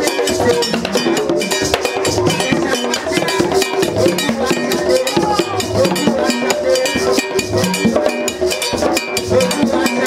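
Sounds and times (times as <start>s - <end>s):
hand drums beating fast: 0.0s - 10.0s.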